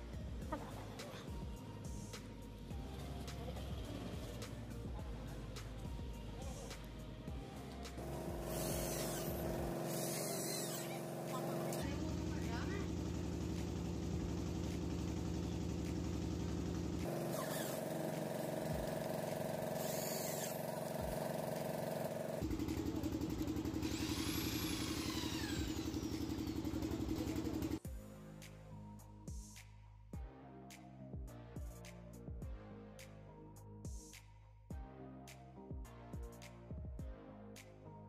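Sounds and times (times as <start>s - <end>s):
electric drill boring into wood: 8.0s - 13.2s, 17.0s - 27.8s.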